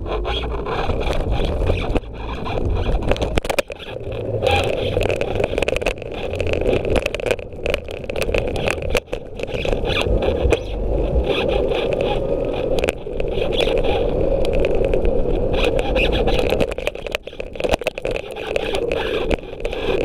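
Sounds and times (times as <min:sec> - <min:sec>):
scooter rattling over cracks: 0:00.0 - 0:20.0
scooter wheels rumbling on concrete: 0:00.0 - 0:20.0.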